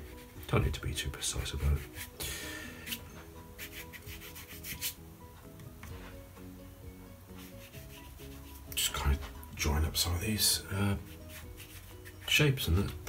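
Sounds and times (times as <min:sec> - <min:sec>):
brush scrubbing on textured paper: 0:00.0 - 0:00.5, 0:01.7 - 0:02.2, 0:03.6 - 0:05.0, 0:07.3 - 0:08.7, 0:11.0 - 0:12.4
soft background music: 0:00.0 - 0:13.0.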